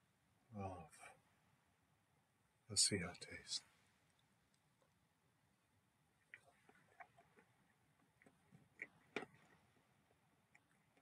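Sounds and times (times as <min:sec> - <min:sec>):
mouth smacks and chewing clicks: 0:06.2 - 0:11.0.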